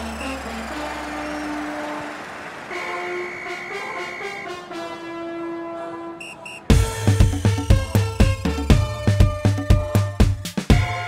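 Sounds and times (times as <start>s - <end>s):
low steady notes: 0.0s - 6.1s
held horn-like tone: 0.0s - 6.7s
faint regular beat: 6.7s - 11.0s.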